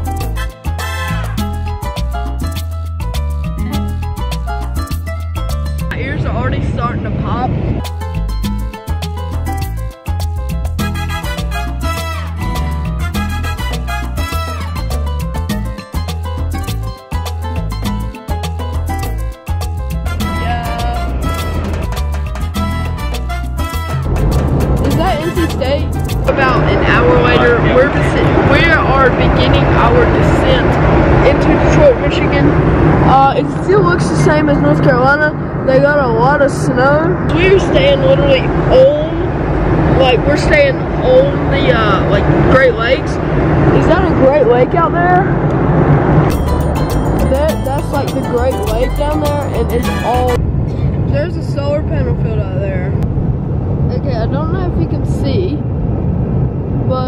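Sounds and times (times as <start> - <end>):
people talking: 5.9 - 7.6, 20.4 - 21.2, 24.9 - 32.5, 33.1 - 39.3, 39.9 - 45.3, 47.2 - 53.0, 53.9 - 55.6.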